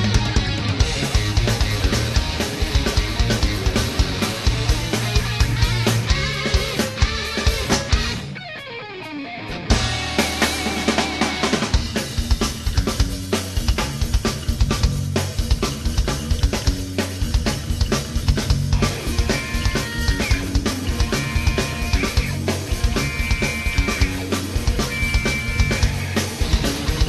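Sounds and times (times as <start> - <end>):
hard rock band playing: 0.0 - 27.0.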